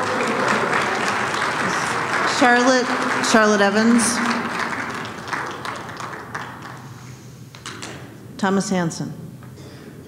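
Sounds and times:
audience applause: 0.0s - 8.0s.

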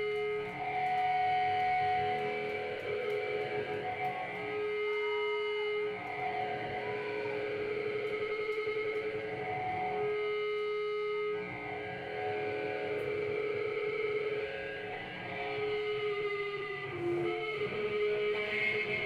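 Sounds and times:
electric guitar sustained notes: 0.0s - 19.0s.

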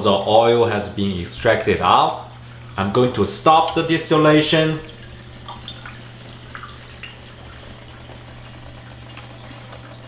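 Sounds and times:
steam distiller humming: 0.0s - 10.0s
water trickling: 0.0s - 10.0s
faint drips: 1.8s - 10.0s.

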